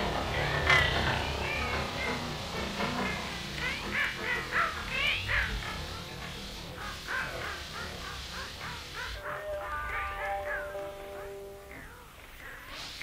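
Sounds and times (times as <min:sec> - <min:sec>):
crow-like calls sliding in pitch: 0:00.3 - 0:13.0.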